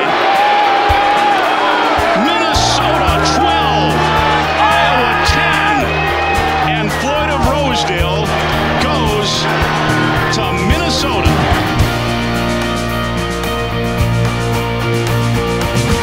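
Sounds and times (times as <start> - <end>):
players shouting and cheering: 0.0 - 13.8
background music with bass: 0.9 - 16.0.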